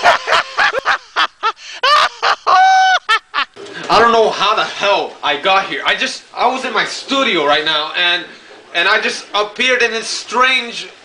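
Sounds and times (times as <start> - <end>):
person cackling laugh: 0.0 - 3.6.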